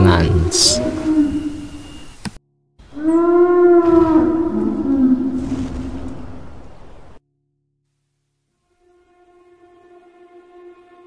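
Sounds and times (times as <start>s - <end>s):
long low creature call: 0.0s - 2.1s, 2.9s - 5.6s.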